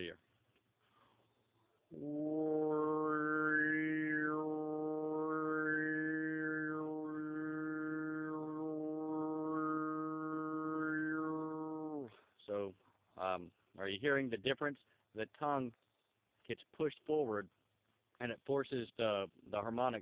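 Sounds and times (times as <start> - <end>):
throat singing with whistling overtone: 1.9 - 12.1.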